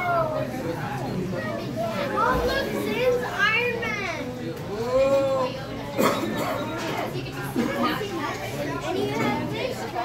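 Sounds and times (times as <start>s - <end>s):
young children chattering excitedly: 0.0s - 10.0s.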